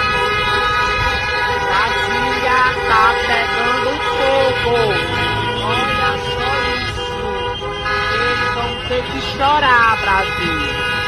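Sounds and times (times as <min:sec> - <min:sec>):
voices shouting: 0:00.0 - 0:10.9
car horns honking: 0:00.0 - 0:11.0.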